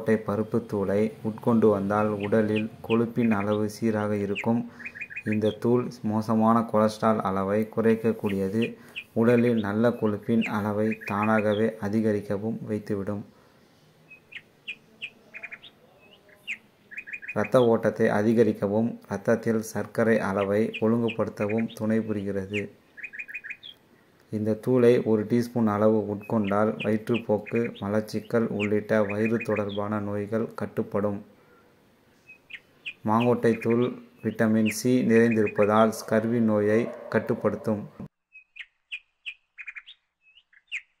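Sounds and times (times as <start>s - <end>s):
small bird chirping: 0.0s - 6.0s, 7.6s - 12.3s, 13.6s - 17.8s, 20.0s - 24.3s, 25.8s - 30.4s, 31.4s - 41.0s.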